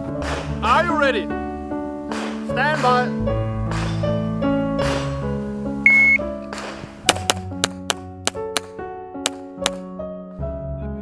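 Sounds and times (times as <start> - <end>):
background music: 0.0 - 11.0
shot timer beep: 5.9 - 6.2.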